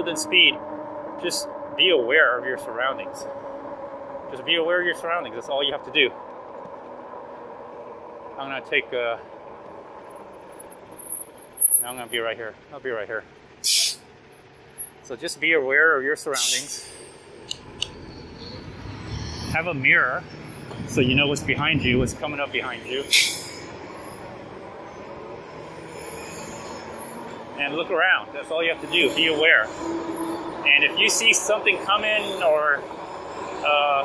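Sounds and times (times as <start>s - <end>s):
wind and tyre noise: 0.0s - 34.0s
electric bike riding noise: 9.4s - 14.9s
short sharp hiss: 13.6s - 14.0s.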